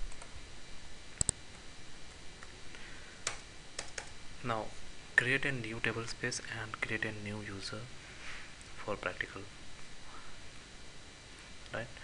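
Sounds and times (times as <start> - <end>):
computer keyboard keystrokes: 3.2 - 4.1.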